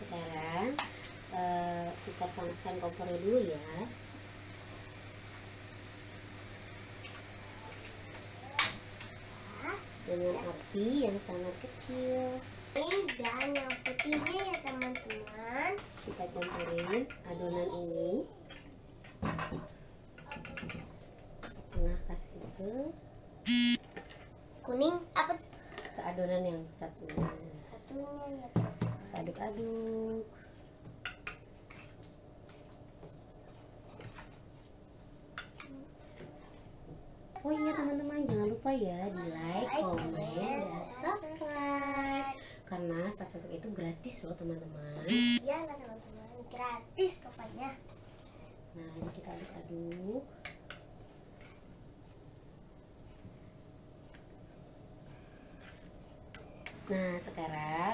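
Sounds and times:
whisk clicking against bowl: 12.9 - 15.4.

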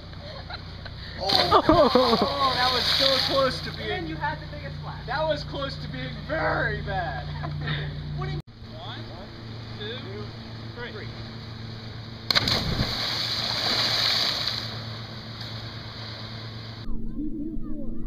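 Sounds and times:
splash into water: 1.2 - 3.6, 12.3 - 16.6
water spray falling back: 1.2 - 3.6, 12.3 - 16.8.

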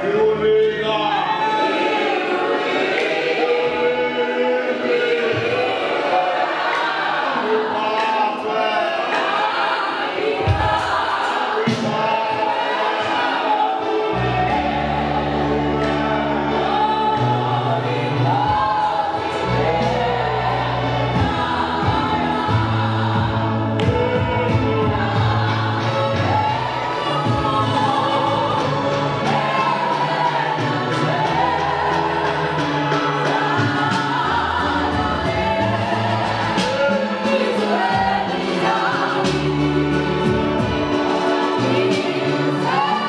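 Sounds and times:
congregation singing a hymn: 0.0 - 43.0.

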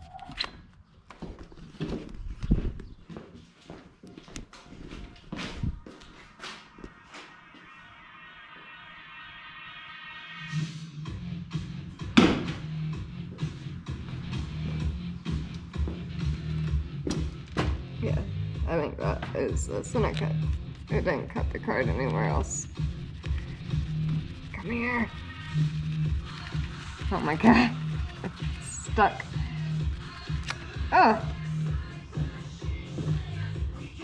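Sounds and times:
background music with steady beat: 3.4 - 34.0.

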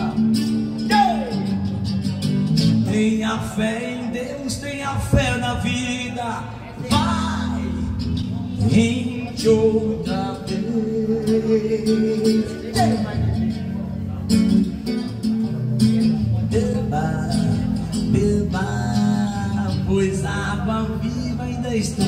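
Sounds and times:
man singing: 0.0 - 22.0
strummed acoustic guitar: 0.0 - 22.0.

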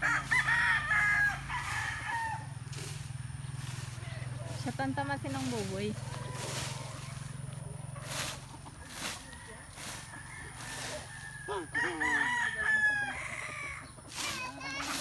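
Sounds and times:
rooster crowing: 0.0 - 2.8, 6.0 - 7.3, 8.9 - 13.9.

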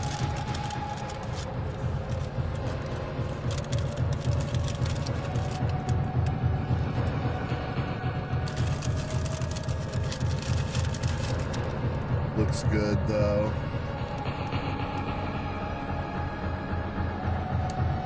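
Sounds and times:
paper wrapper crinkling: 0.0 - 5.9, 8.5 - 11.7
car idling hum: 0.0 - 18.0.

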